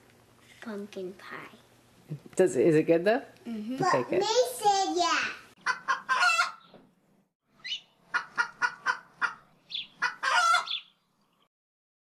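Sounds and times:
chicken clucking: 0:05.6 - 0:06.7, 0:08.1 - 0:10.8
chicken squawk: 0:05.6 - 0:06.7, 0:07.6 - 0:10.9.

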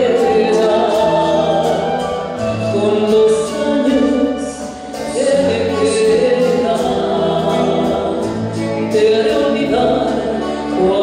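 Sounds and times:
instrumental accompaniment: 0:00.0 - 0:11.0
woman singing a slow ballad: 0:00.0 - 0:11.0.

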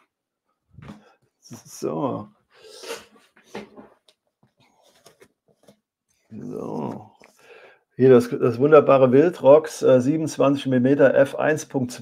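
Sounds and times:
object being handled: 0:03.1 - 0:07.4.

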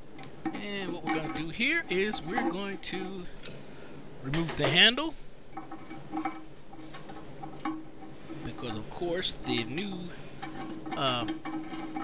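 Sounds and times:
light metallic clicks and scrapes: 0:05.5 - 0:12.0.

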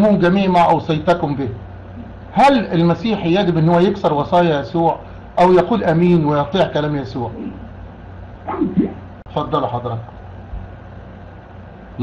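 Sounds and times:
phone line hum and hiss: 0:00.0 - 0:12.0.

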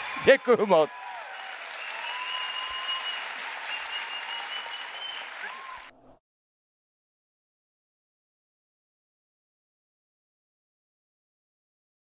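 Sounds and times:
audience applauding: 0:00.0 - 0:05.9.

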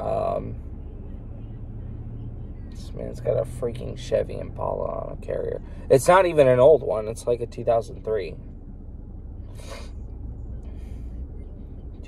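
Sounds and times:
low rumble inside car cabin: 0:00.0 - 0:12.0.

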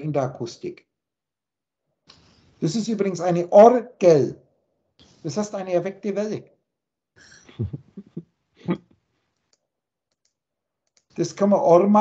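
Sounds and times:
keyboard and mouse clicks: 0:09.4 - 0:11.2.

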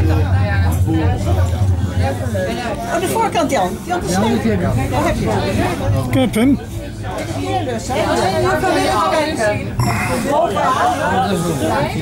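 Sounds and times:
passengers chattering: 0:00.0 - 0:12.0
low steady hum: 0:09.8 - 0:10.6.

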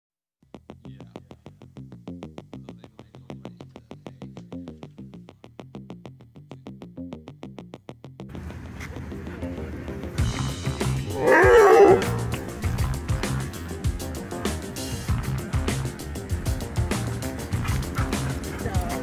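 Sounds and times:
background music with steady beat: 0:00.4 - 0:19.0
dogs growling in play: 0:11.1 - 0:12.6.

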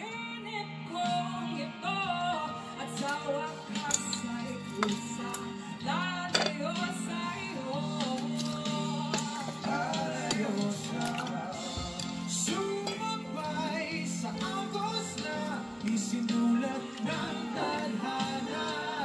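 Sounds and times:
background music: 0:00.0 - 0:19.0
person singing: 0:00.0 - 0:19.0.

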